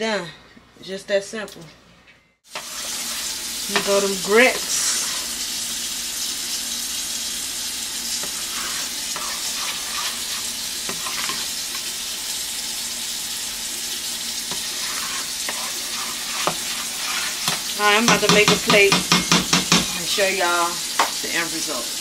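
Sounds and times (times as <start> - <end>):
grits being stirred in pot: 2.5 - 20.2
utensil scraping against pot: 2.6 - 5.5, 8.1 - 11.9, 14.4 - 20.0.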